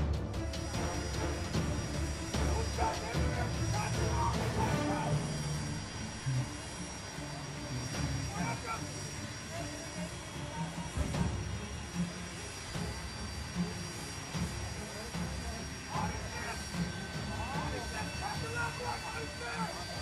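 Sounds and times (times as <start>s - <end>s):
distant men's voices: 0.5s - 12.6s.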